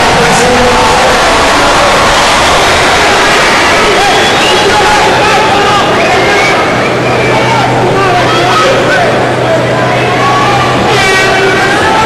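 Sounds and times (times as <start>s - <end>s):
crowd shouting: 0.0s - 12.0s
steady low hum: 0.0s - 12.0s.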